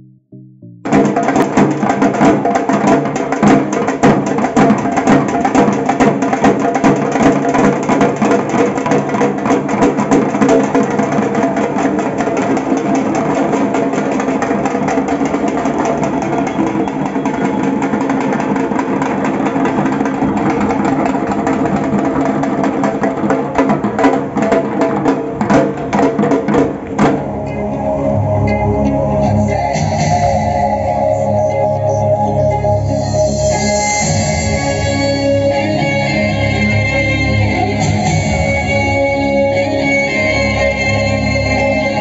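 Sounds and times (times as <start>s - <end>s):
steady pitched tones: 26.5s - 42.0s.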